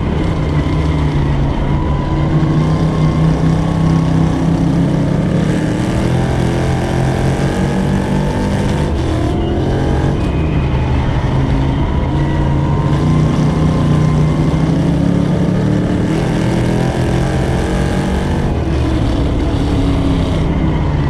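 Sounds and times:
race car engine running hard: 0.0s - 21.0s.

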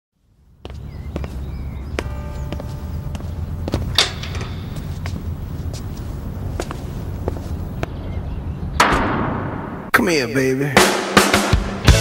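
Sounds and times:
steady low hum: 0.2s - 9.9s.

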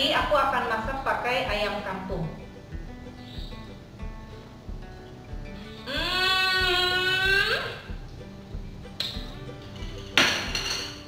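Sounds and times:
soft music with pulsing bass: 0.0s - 11.0s
plate and spoon clinking on glass: 9.0s - 11.0s.

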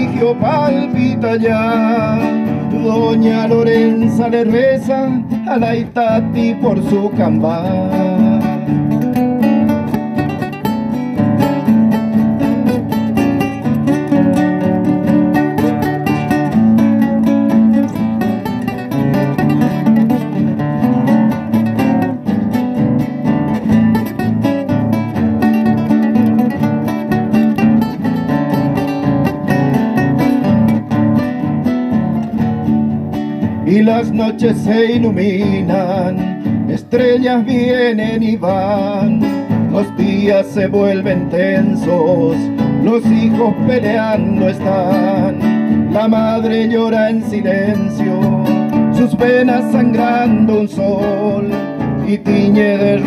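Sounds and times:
acoustic guitars playing: 0.0s - 53.0s.

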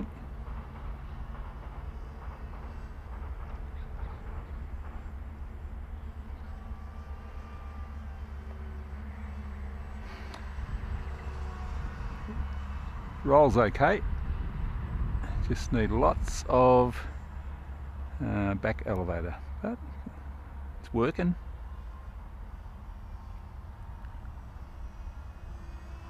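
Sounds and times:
electric model aircraft whine: 5.7s - 26.0s
wind noise on microphone: 10.5s - 17.0s.

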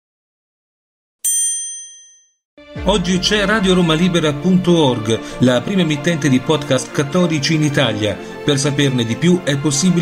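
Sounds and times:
bell-like ding: 1.2s - 2.4s
music: 2.6s - 10.0s
man speaking: 2.8s - 10.0s.

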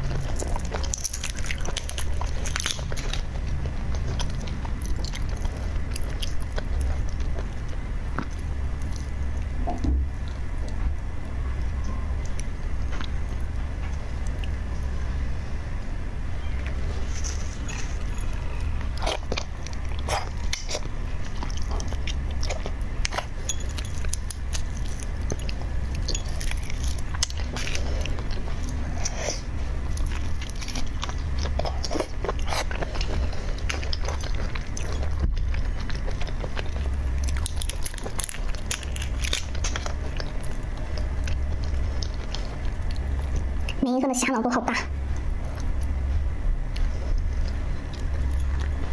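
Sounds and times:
chewing with wet mouth clicks: 0.0s - 10.9s, 16.6s - 43.8s, 45.1s - 46.0s, 46.7s - 48.9s
low hum: 0.0s - 48.9s.

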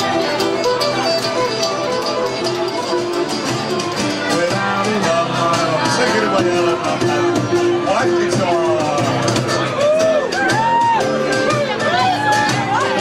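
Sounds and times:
fiddle melody: 0.0s - 13.0s
folk dance band playing: 0.0s - 13.0s.

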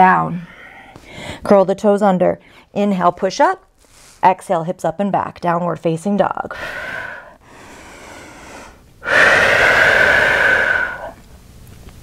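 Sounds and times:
woman breathing: 0.3s - 1.4s, 6.5s - 11.2s.

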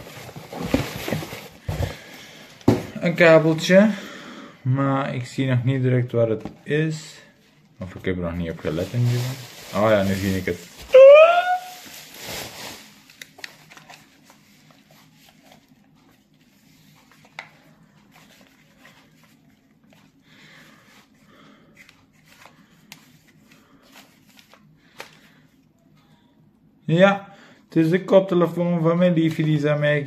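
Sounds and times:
bubble wrap crinkling: 8.5s - 17.0s
person exclaiming: 10.8s - 11.8s.

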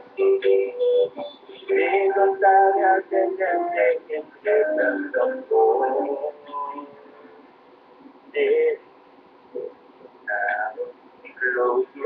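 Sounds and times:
acoustic guitar: 0.0s - 8.9s
man singing: 1.6s - 7.3s, 8.3s - 8.9s, 10.3s - 12.0s.

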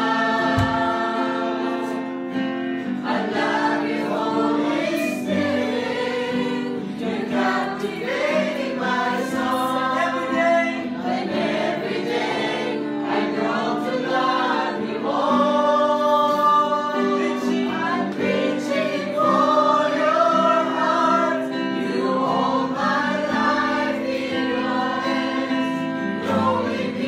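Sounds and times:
group singing worship song: 0.0s - 27.0s.

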